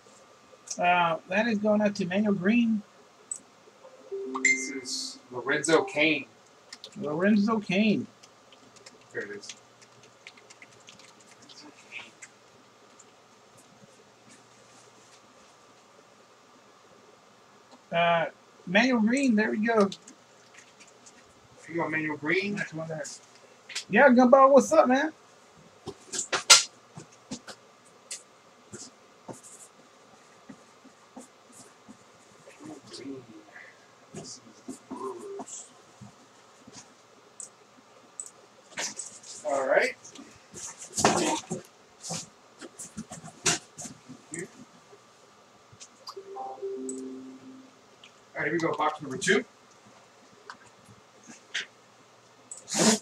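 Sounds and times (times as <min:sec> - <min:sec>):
quiet indistinct speech: 0:32.5 - 0:35.7.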